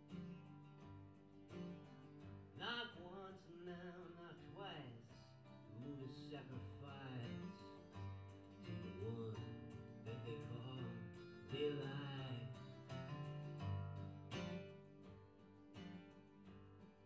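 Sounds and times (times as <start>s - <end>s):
acoustic guitars playing: 0.0s - 17.0s.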